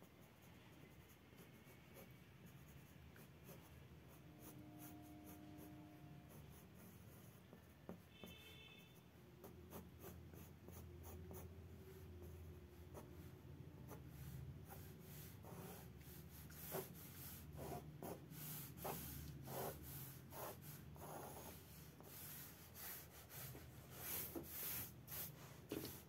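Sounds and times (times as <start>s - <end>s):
pencil scratching on paper: 0.0s - 26.0s.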